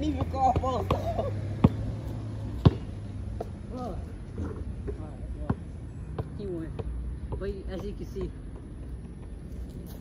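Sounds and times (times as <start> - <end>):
basketball bouncing on pavement: 0.0 - 10.0.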